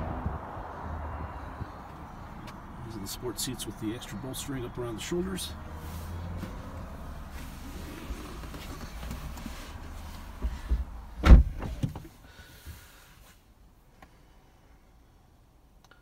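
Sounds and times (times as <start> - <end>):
outside rumble: 0.0 - 12.8
car door shutting: 10.4 - 12.2.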